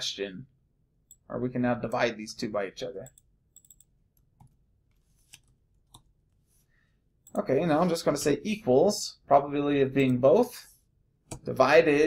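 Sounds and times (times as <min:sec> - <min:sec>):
keyboard and mouse clicks: 0:03.0 - 0:06.1, 0:11.3 - 0:11.5.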